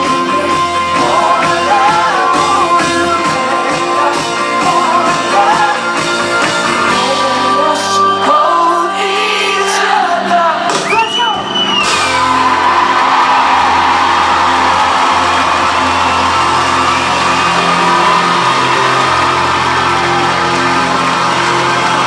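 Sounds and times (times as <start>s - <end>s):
live band with guitar: 0.0s - 22.0s
crowd whooping and shouting: 10.7s - 22.0s.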